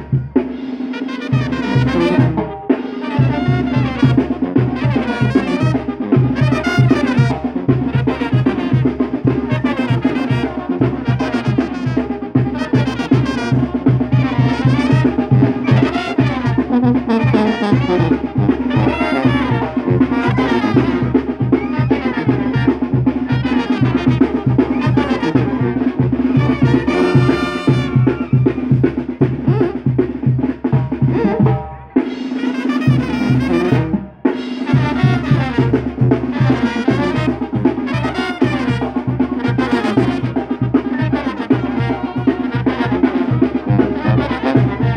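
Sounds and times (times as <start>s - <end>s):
brass band with drums playing: 0.0s - 44.9s.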